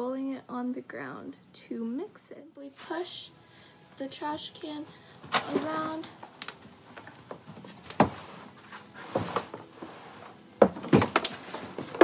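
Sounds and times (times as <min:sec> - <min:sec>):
plastic bin rolling on concrete: 0:07.3 - 0:12.0.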